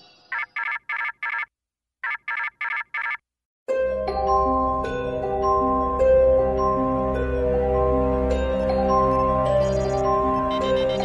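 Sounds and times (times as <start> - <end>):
music: 3.7 - 11.0
electronic ringtone beeps: 9.5 - 11.0.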